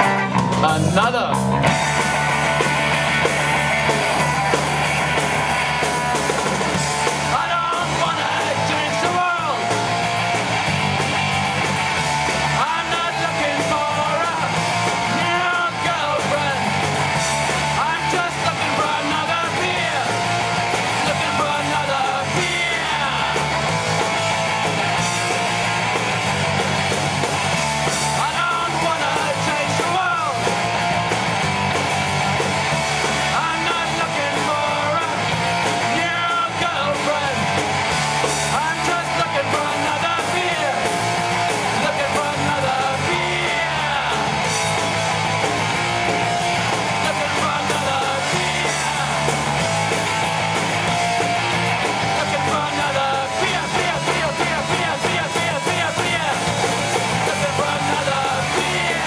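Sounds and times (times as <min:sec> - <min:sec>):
distorted electric guitars: 0:00.0 - 0:59.0
drums: 0:00.0 - 0:59.0
person singing: 0:07.2 - 0:10.0, 0:12.5 - 0:16.8, 0:17.7 - 0:23.6, 0:28.0 - 0:30.6, 0:33.2 - 0:37.6, 0:38.5 - 0:44.6, 0:46.0 - 0:49.6, 0:51.3 - 0:59.0.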